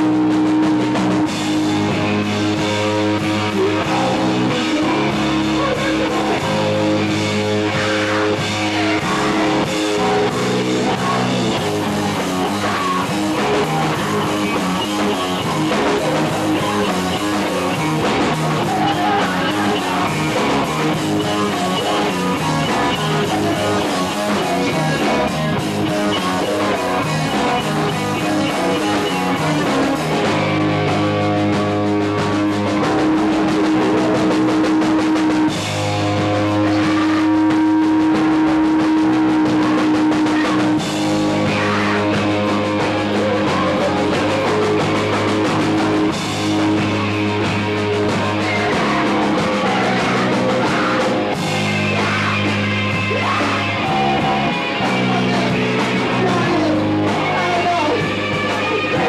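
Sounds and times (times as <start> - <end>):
electric bass long notes: 0.0 - 59.0
rock band playing: 0.0 - 59.0.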